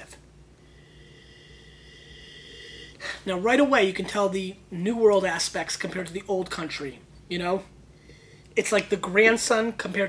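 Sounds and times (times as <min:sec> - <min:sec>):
slow nasal sniff: 0:00.6 - 0:03.2.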